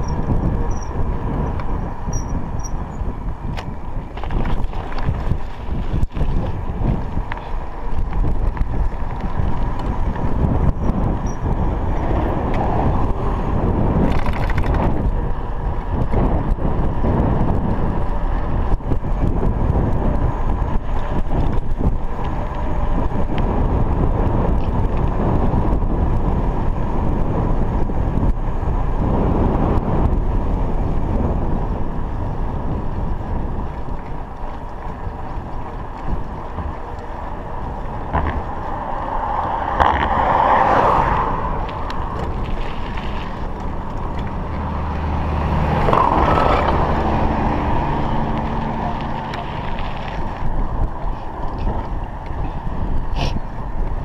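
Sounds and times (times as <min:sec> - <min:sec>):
bike tyres rolling on tarmac: 0:00.0 - 0:54.0
wind buffeting microphone: 0:00.0 - 0:54.0.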